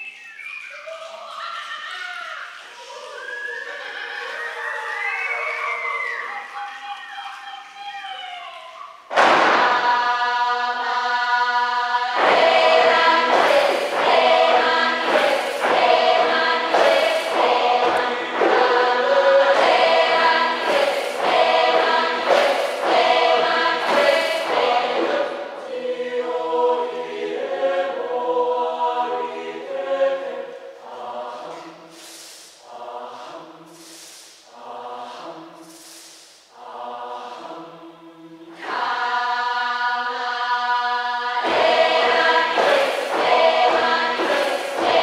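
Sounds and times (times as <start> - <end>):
rhythmic chanting: 0.0 - 45.0
mixed choir singing: 9.1 - 45.0.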